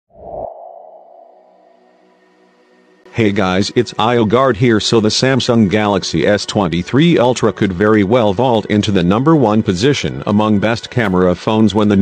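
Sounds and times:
ringing sonar-like tone: 0:00.3 - 0:02.9.

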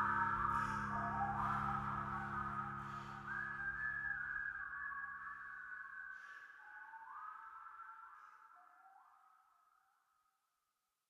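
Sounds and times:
low sustained accompaniment: 0:00.0 - 0:04.7
whistled melody: 0:00.0 - 0:09.8.

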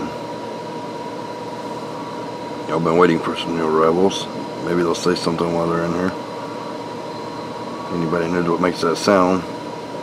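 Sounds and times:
background hum and hiss: 0:00.0 - 0:10.0
faint high whine: 0:00.0 - 0:10.0.

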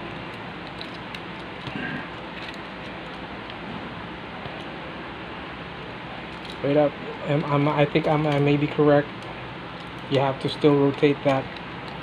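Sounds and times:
steady room hiss: 0:00.0 - 0:12.0.

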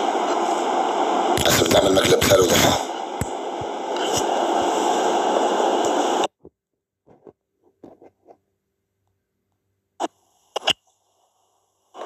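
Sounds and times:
static hiss: 0:00.0 - 0:06.3, 0:10.0 - 0:12.0.

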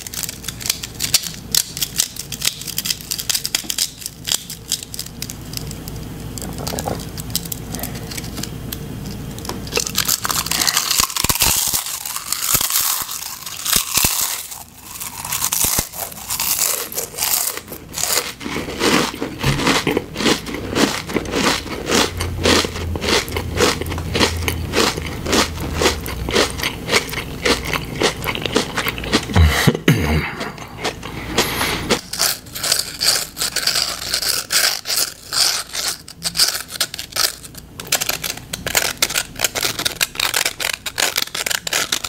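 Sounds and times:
potato chips crunching: 0:00.0 - 0:42.0.

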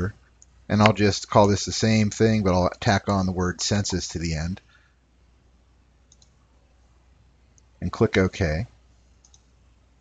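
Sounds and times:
computer mouse clicks: 0:06.1 - 0:06.4, 0:09.2 - 0:09.5.

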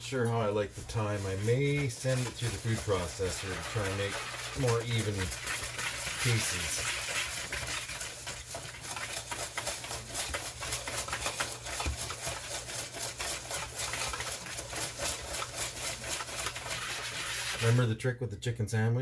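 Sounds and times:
utensil scraping dry mix in bowl: 0:00.0 - 0:17.8.

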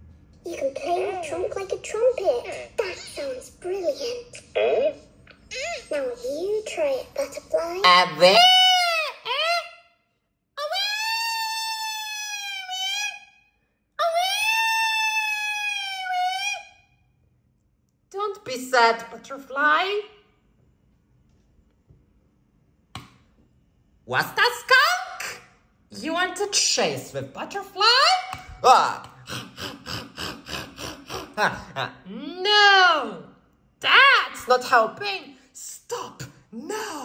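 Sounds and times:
cartoon character wailing: 0:07.8 - 0:09.8, 0:10.6 - 0:13.2, 0:14.0 - 0:16.7
skunk growling: 0:29.1 - 0:31.8.

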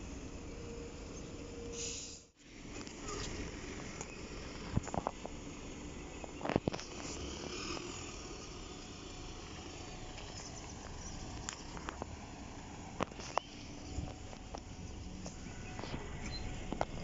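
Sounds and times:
bus engine and road noise: 0:00.0 - 0:17.0.

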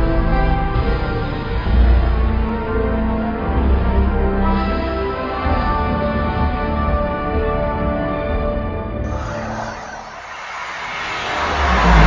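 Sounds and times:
deep rumble: 0:09.1 - 0:12.0
rising whoosh: 0:09.1 - 0:12.0.

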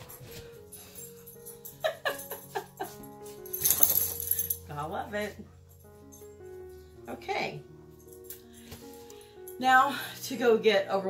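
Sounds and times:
bright jingly background music: 0:00.0 - 0:11.0.

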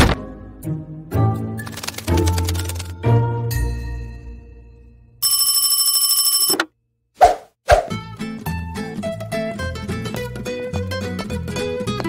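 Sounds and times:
telephone bell ringing: 0:05.2 - 0:06.7
plucked-string music: 0:08.0 - 0:12.0.

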